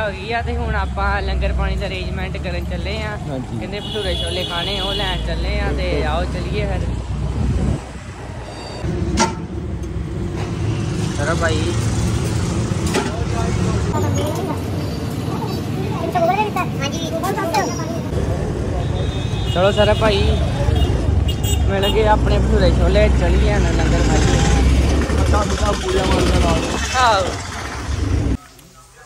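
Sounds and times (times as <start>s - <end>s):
men talking: 0.0s - 7.8s, 17.0s - 27.4s
road noise: 0.0s - 29.0s
street noise: 0.0s - 29.0s.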